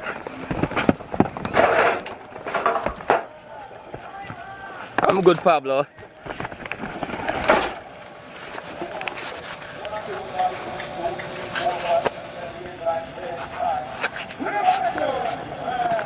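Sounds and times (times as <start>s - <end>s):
faint distant voices: 0.0s - 16.0s
street ambience: 0.0s - 16.0s.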